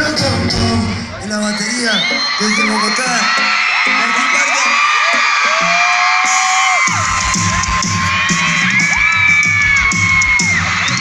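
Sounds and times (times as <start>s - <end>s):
drum and bass beat: 0.0s - 1.1s, 2.2s - 11.0s
live pop band: 0.0s - 11.0s
crowd cheering and whooping: 1.2s - 11.0s.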